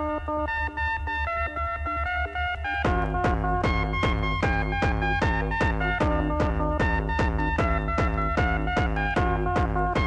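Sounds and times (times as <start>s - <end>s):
pulsing bass: 0.0s - 10.0s
synthesizer melody: 0.0s - 10.0s.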